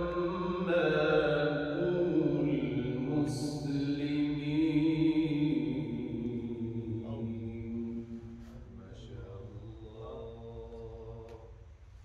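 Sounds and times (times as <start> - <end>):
man reciting melodically: 0.0 - 11.6.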